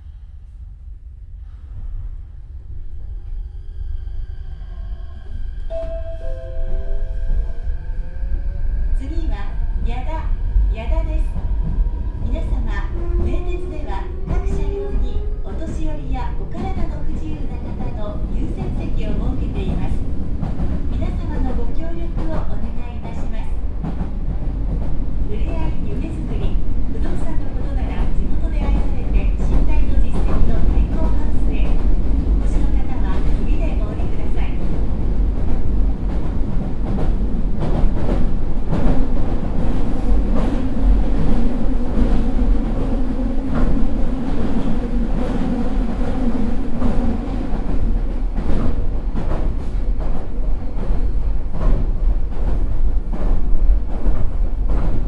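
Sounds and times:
train wheels rumbling on rails: 7.1s - 55.0s
rail clicks: 11.3s - 55.0s.

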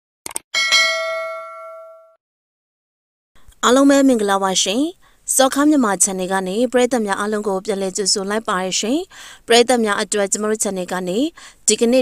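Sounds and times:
notification bell ding: 0.6s - 2.2s.

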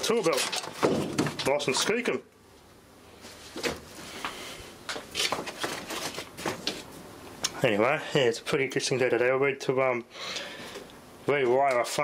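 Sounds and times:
objects knocking and rustling: 0.0s - 2.0s, 3.4s - 3.9s, 4.9s - 7.0s.

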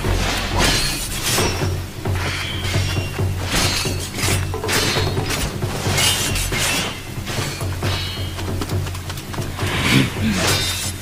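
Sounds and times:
swords clashing and swishing: 0.0s - 8.4s, 9.9s - 11.0s
dramatic background music: 0.0s - 11.0s.

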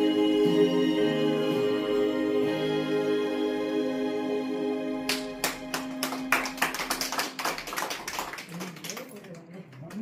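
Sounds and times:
people clapping: 5.0s - 10.0s.

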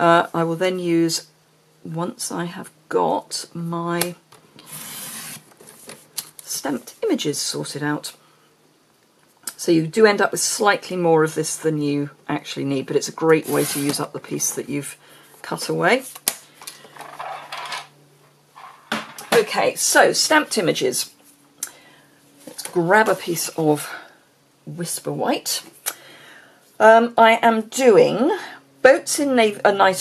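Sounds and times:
paper strips rustling and scraping: 4.6s - 6.4s, 13.4s - 14.1s, 16.9s - 17.9s.

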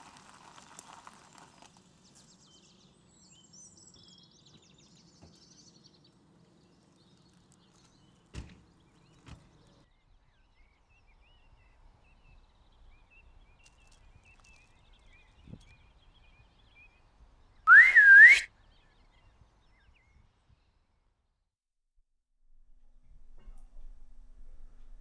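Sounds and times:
rising whistled call: 17.7s - 18.5s.

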